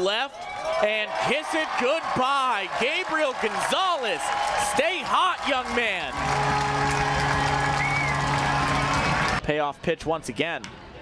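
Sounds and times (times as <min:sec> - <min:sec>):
crowd cheering: 0:00.3 - 0:09.6.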